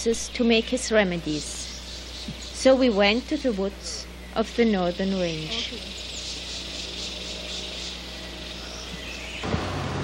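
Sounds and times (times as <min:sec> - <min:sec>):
insects chirping: 0:00.0 - 0:09.6.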